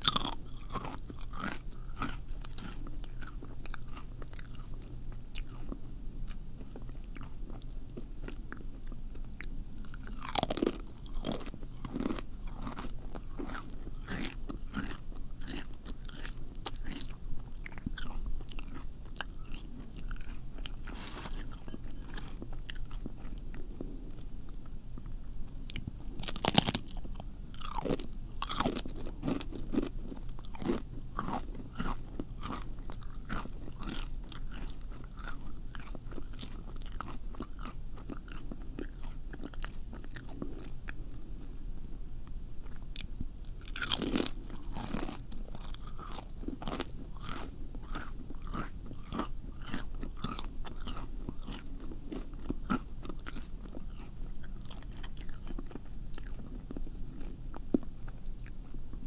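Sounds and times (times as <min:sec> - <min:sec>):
crunchy chewing: 0:00.0 - 0:59.0.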